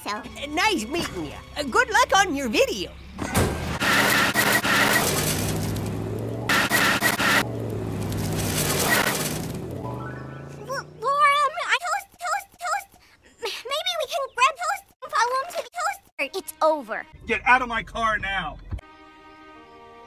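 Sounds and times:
cartoon van engine pulling away: 3.6s - 11.5s
spinning tyres hissing: 3.8s - 11.0s.

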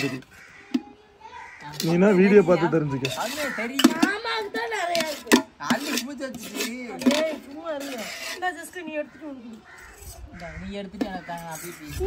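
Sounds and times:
crows cawing: 0.0s - 4.7s, 8.4s - 12.0s.

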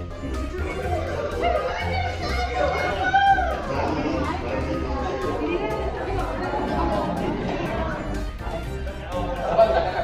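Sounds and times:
people chattering: 0.0s - 10.0s
pop music with steady beat: 0.0s - 10.0s.

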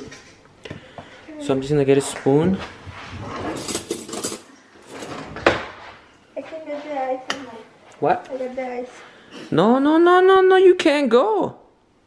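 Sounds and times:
cutlery clinking: 3.5s - 5.2s.

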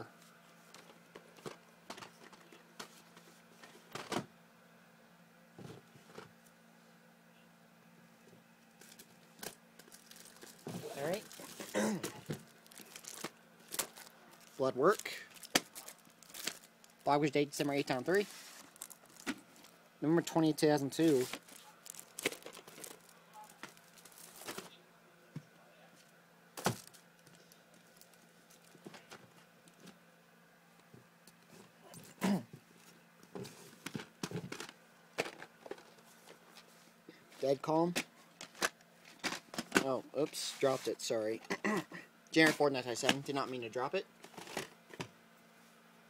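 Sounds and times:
low steady hum: 0.0s - 46.0s
plastic cassettes rustling: 0.7s - 4.2s, 8.8s - 19.8s, 20.5s - 24.8s, 26.6s - 30.0s, 33.4s - 36.7s, 37.9s - 39.9s, 44.2s - 45.1s.

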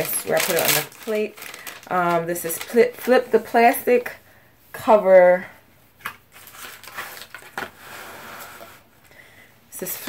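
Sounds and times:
paper rustling and crinkling: 0.0s - 3.2s, 6.0s - 7.8s.

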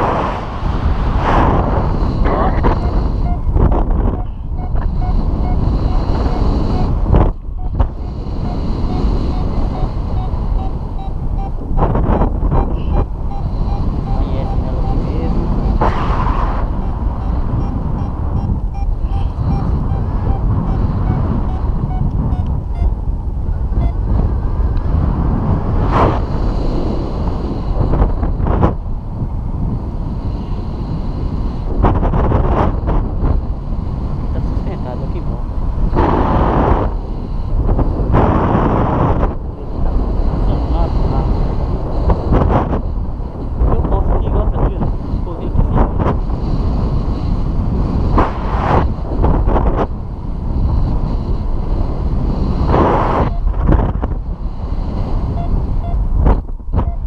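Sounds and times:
wind buffeting microphone: 0.0s - 57.0s
faint rapid beeping: 12.6s - 15.8s, 17.2s - 22.9s.

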